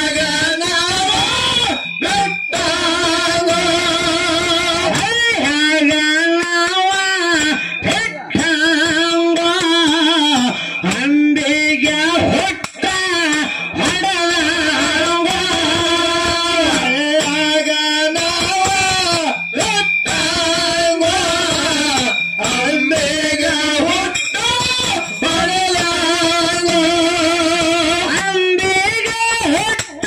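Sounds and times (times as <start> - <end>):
instrumental accompaniment: 0.0 - 30.0.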